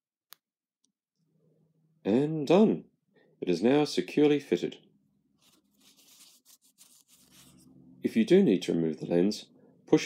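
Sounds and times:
paper towel wiping glass lens: 0:05.4 - 0:07.7.

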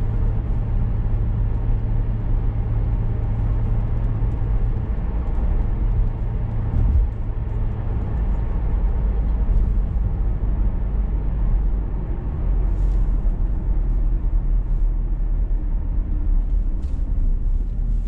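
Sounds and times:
car interior road rumble: 0:00.0 - 0:18.0
low hum: 0:00.0 - 0:18.0.

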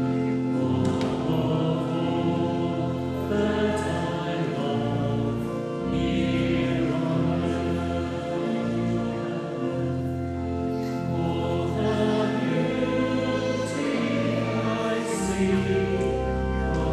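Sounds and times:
choir singing a slow hymn: 0:00.0 - 0:16.9
low sustained accompaniment: 0:00.0 - 0:16.9.

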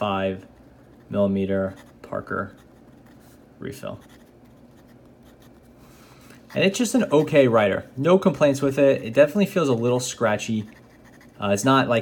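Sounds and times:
pen scratching on paper: 0:00.8 - 0:03.3, 0:04.0 - 0:05.7, 0:10.6 - 0:11.5.

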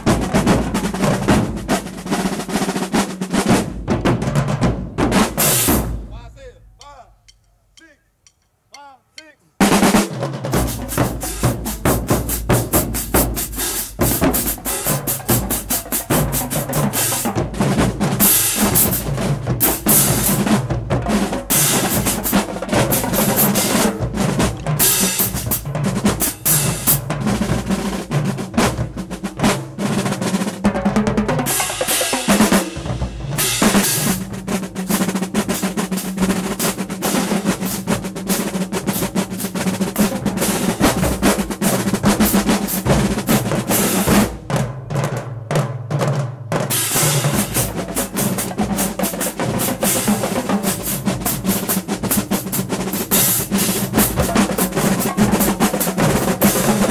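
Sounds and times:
accented drum hits: 0:00.0 - 0:07.4, 0:09.6 - 0:56.9
marching drumline cadence: 0:00.0 - 0:56.9.

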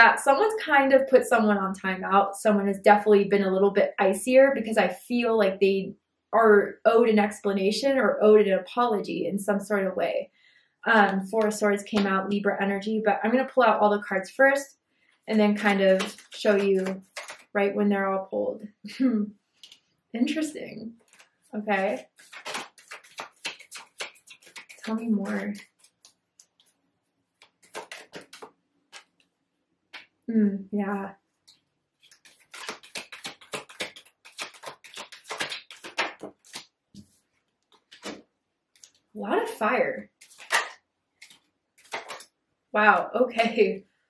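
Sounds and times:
cards being shuffled: 0:15.6 - 0:17.6, 0:19.6 - 0:19.9, 0:21.0 - 0:29.3, 0:31.5 - 0:39.1, 0:40.0 - 0:42.3.

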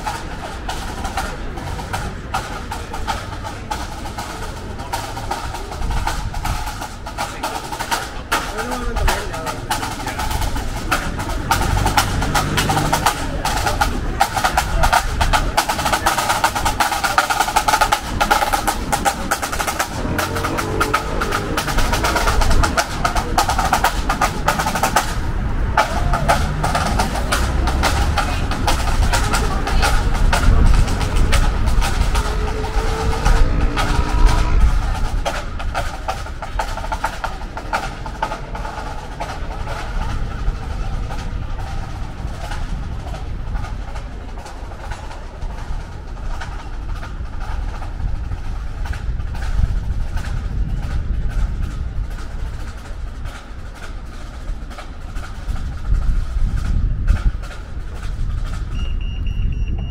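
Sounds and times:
vehicle passing: 0:00.0 - 0:58.6
road traffic: 0:00.0 - 0:59.9.

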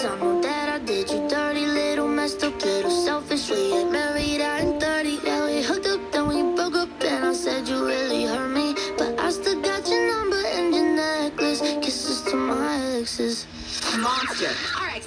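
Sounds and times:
music through small radio speaker: 0:00.0 - 0:15.0.

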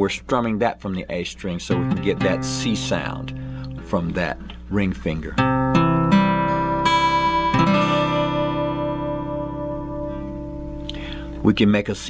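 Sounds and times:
acoustic guitar chord strummed: 0:01.6 - 0:11.6.

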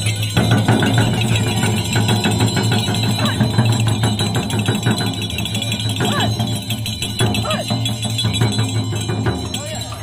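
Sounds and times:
frame drums beaten fast: 0:00.0 - 0:10.0
low drone of drum heads: 0:00.3 - 0:09.8.

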